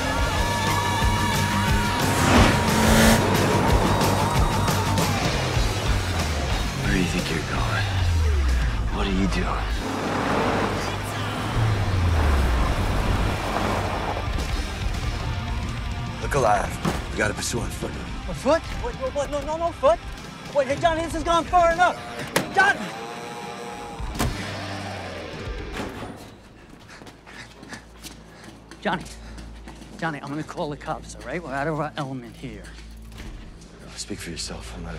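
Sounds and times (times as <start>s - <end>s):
car engine revving: 0.0s - 15.5s, 21.4s - 25.8s
tyre and road noise: 0.0s - 18.0s
background music: 0.0s - 26.6s, 27.4s - 34.9s
footsteps on concrete: 26.4s - 33.8s.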